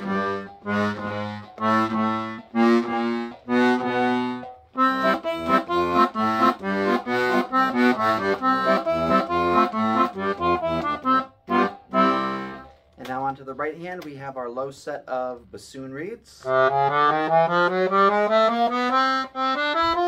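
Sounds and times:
accordion bass and chord notes: 0:00.0 - 0:13.8, 0:16.4 - 0:20.0.

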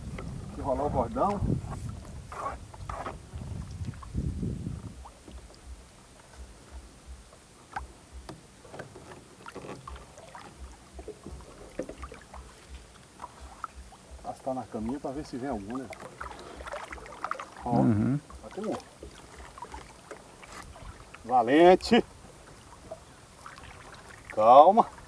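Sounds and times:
low steady rumble: 0:00.0 - 0:08.6
water sounds: 0:00.0 - 0:25.0.

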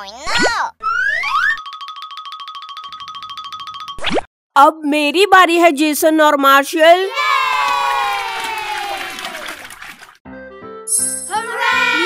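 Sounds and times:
crowd cheering: 0:07.1 - 0:10.2, 0:11.3 - 0:12.0.

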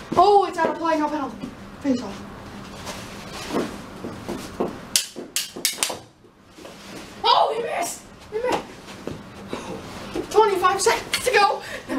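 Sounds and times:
soft knocks and scuffles: 0:02.8 - 0:05.3, 0:08.2 - 0:10.4
plastic sticks clacking: 0:05.0 - 0:06.0.

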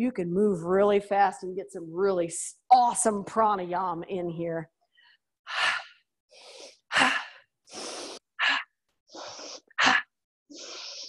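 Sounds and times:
person breathing forcefully: 0:05.5 - 0:11.0.

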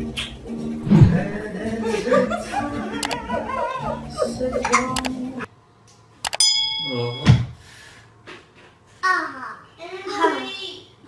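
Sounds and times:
bell-like ding: 0:06.3 - 0:07.6.

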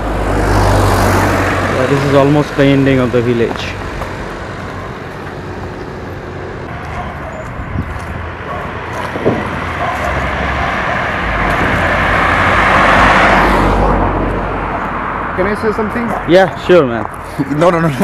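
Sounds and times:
car driving past on paved road: 0:08.9 - 0:15.6.

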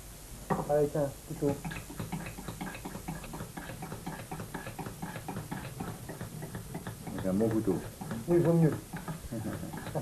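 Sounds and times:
rapid clicking crackle of skinning tool: 0:01.6 - 0:10.0.

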